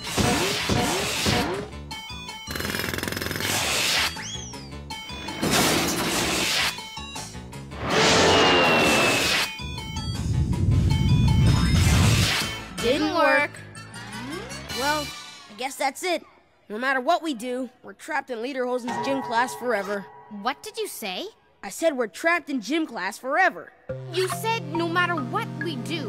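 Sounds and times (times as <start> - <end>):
music: 0.0 - 15.5, 23.9 - 26.0
rising and falling zing: 7.8 - 12.6
falling whistle-like glides: 8.3 - 9.5
low rumble: 9.7 - 12.2.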